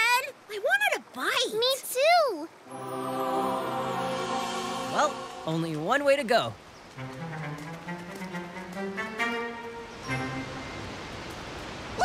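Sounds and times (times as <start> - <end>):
orchestral strings melody: 2.6 - 11.1.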